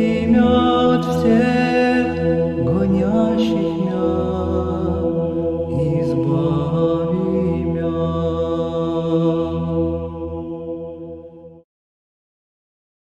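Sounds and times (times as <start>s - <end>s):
low drone: 0.0s - 11.6s
sung church chant: 0.0s - 11.6s.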